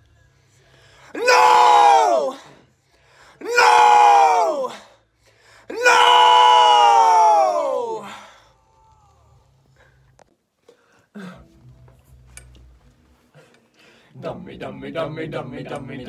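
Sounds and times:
men shouting in unison: 1.1 - 2.5, 3.4 - 4.8, 5.7 - 8.1.

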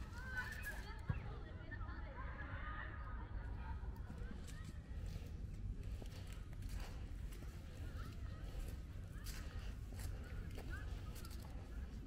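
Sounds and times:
footsteps on leafy paved path: 0.0 - 1.0, 4.4 - 12.0.

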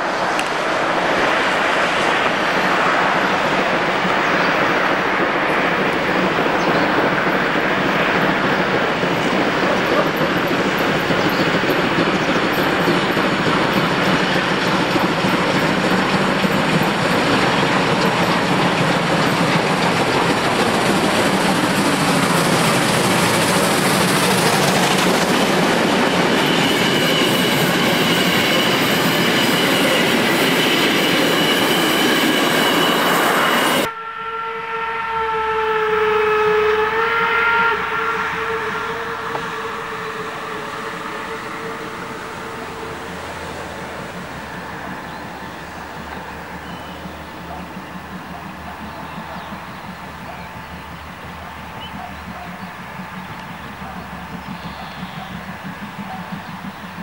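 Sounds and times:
steam locomotive exhaust: 0.0 - 57.0
steam locomotive whistle: 19.1 - 43.2, 53.2 - 56.7.

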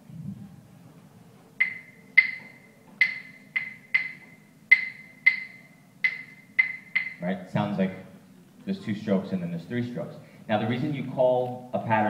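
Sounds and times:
claves clicking in rhythm: 1.6 - 7.2.

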